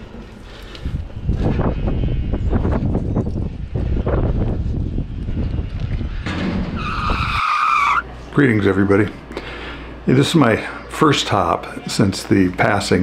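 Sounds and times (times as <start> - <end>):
freight car rumbling on rails: 1.2 - 7.4
high-pitched metal squeal: 6.8 - 8.0.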